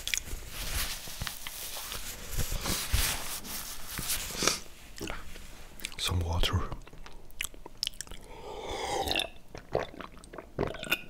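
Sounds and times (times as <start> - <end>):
wet lip and tongue clicks: 6.7 - 8.3.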